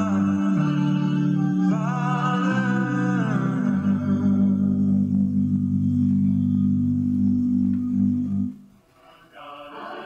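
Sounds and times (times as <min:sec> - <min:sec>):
gospel music chord: 0:00.0 - 0:08.7.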